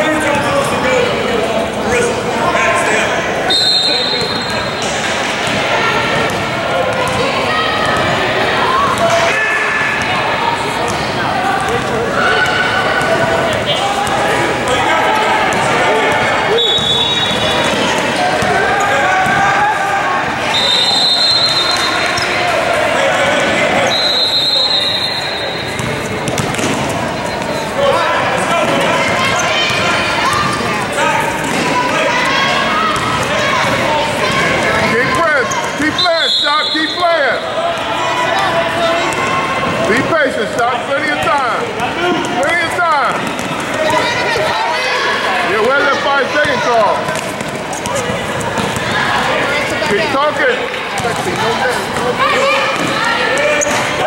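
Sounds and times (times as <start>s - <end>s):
shouts and chatter: 0.0s - 54.0s
spectators' voices echoing: 0.0s - 54.0s
sneakers squeaking: 2.9s - 19.6s, 20.3s - 54.0s
basketball bouncing: 5.4s - 8.2s, 25.6s - 27.7s, 43.1s - 44.0s, 46.4s - 49.0s
basketball dribbling on gym floor: 25.8s - 26.8s.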